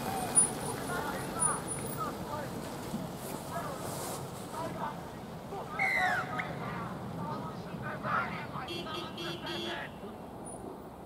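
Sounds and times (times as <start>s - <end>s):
crowd voices: 0.0s - 10.2s
car horn tooting: 8.6s - 10.0s.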